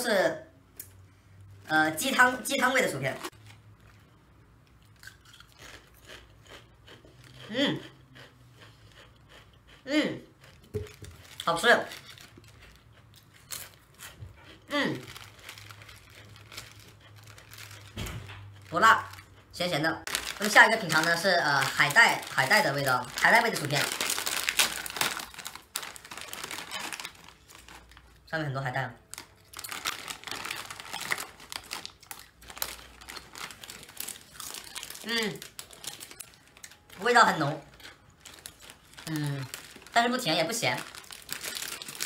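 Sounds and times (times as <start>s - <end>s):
foil chip bag crinkling: 15.0s - 19.4s, 20.0s - 28.2s, 29.1s - 42.0s.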